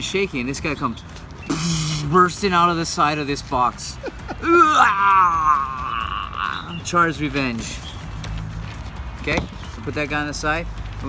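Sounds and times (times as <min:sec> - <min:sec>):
man making roar sound: 0:04.4 - 0:06.7.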